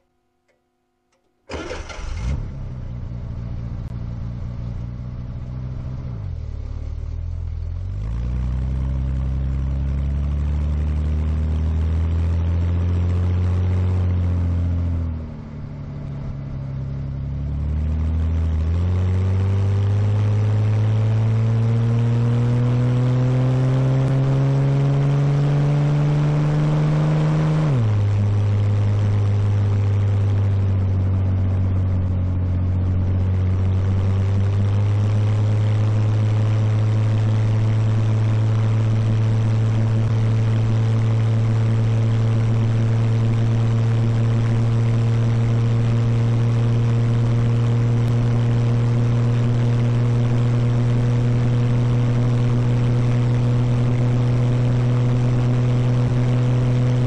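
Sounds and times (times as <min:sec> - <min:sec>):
car engine and exhaust revving: 0:01.2 - 0:57.0.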